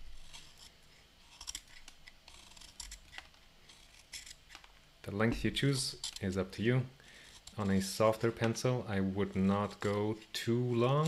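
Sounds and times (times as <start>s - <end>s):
knife scraping pencil wood: 0.1s - 4.5s, 5.9s - 6.3s.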